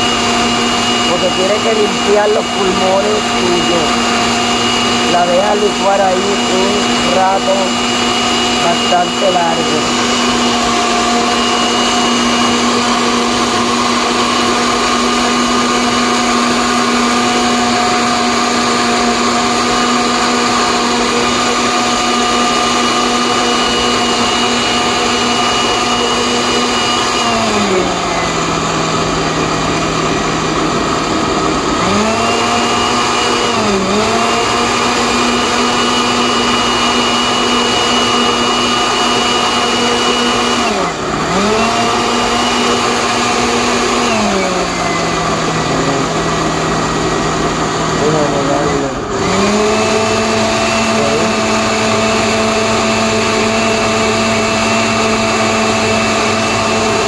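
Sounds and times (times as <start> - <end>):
blender motor humming: 0.0 - 57.0.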